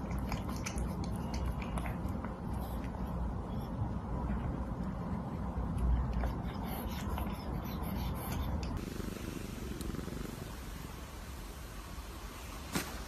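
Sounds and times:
cat purring: 6.2 - 11.4.

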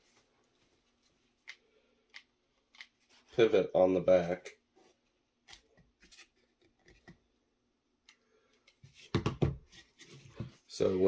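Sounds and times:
knocks and rustling: 8.9 - 10.6.

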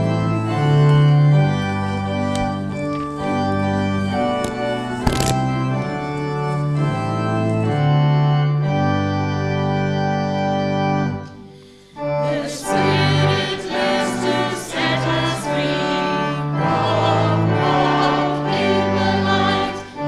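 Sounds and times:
congregation singing: 0.0 - 8.7, 11.1 - 20.0
church organ playing chords: 0.0 - 20.0.

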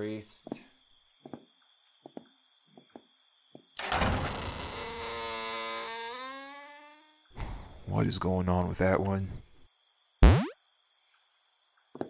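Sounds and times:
door creaking: 3.8 - 7.9.

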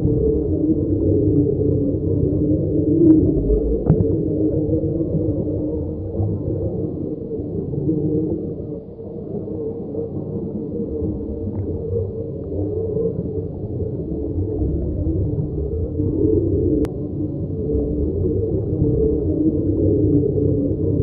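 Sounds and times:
low continuous drone: 0.0 - 21.0.

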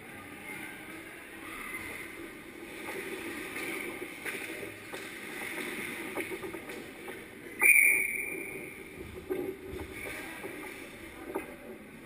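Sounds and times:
ice skates scraping: 2.1 - 7.4
hockey sticks clicking on ice: 2.8 - 7.4.

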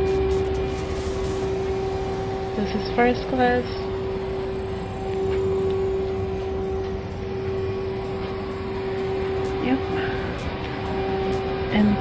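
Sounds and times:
aircraft cabin systems hum: 0.0 - 12.0.

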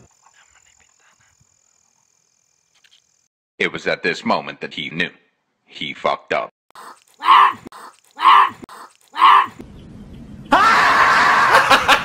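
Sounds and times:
high thin insect drone: 0.0 - 3.3.

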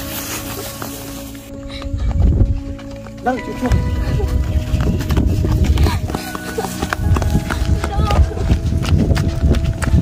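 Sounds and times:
background music with low beat: 0.0 - 10.0.

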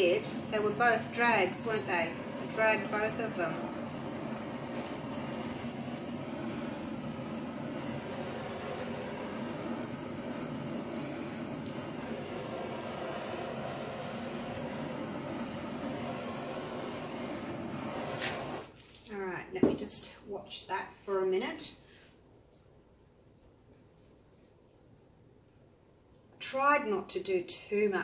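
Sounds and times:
gas torch hissing: 0.0 - 18.8.

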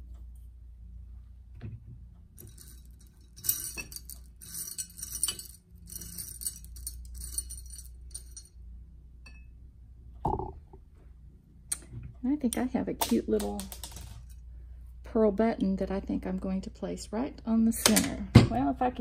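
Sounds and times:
beads and buttons rattling: 2.4 - 8.5.

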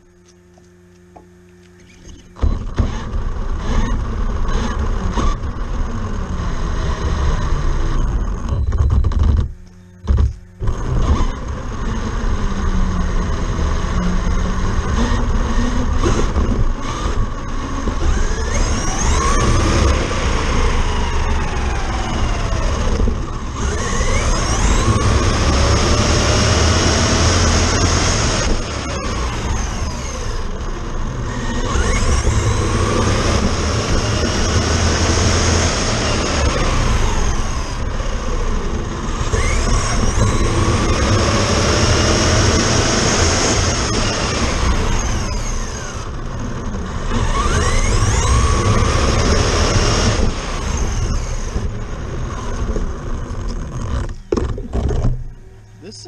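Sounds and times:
electric motor whine: 0.0 - 56.0
road rumble: 0.0 - 56.0.

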